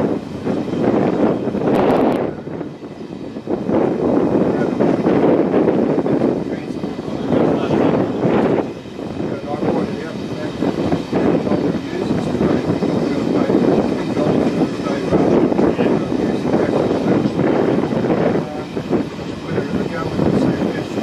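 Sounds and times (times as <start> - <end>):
train wheels rumbling on rail: 0.0 - 21.0
wind rushing: 0.0 - 21.0.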